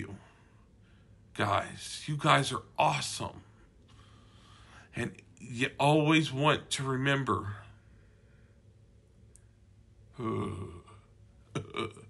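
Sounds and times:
short vocal sounds: 10.1s - 12.0s.

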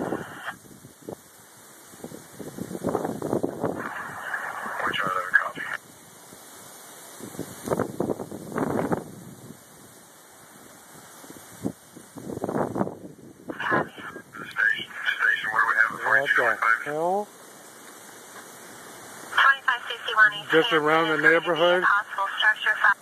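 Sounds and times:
radio dispatch voices: 0.0s - 0.6s, 3.8s - 5.8s, 13.5s - 17.3s, 19.3s - 23.0s.

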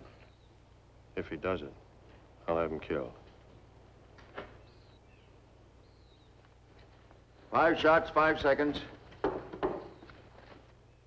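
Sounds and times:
soft knocks on wooden bench: 9.2s - 10.0s.

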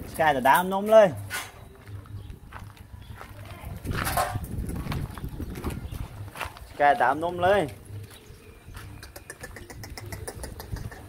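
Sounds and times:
dogs snuffling on gravel: 1.0s - 10.2s.

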